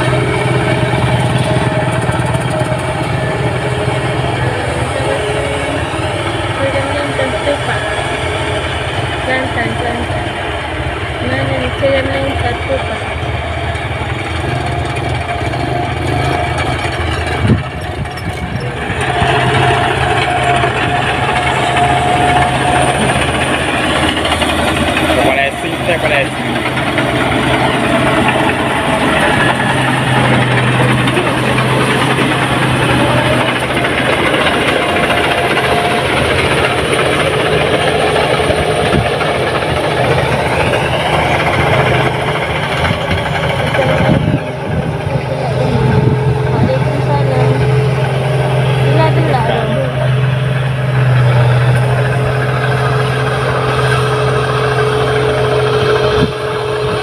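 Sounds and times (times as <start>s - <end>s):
combine harvester engine hum: 0.0s - 57.0s.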